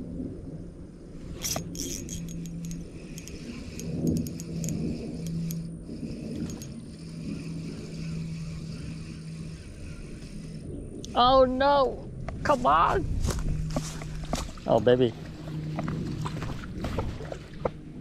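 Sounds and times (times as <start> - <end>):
low hum: 0.0 - 18.0
low steady rumble: 0.0 - 18.0
fishing tackle clicking and clinking: 1.4 - 6.8.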